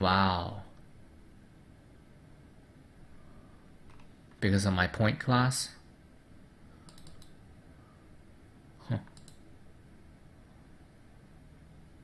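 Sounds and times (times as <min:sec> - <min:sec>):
computer mouse clicks: 0:03.8 - 0:04.1, 0:06.8 - 0:07.4, 0:09.0 - 0:09.5.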